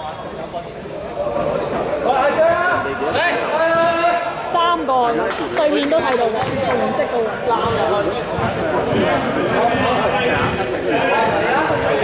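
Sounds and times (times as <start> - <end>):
voices shouting in echoing hall: 1.3 - 5.3.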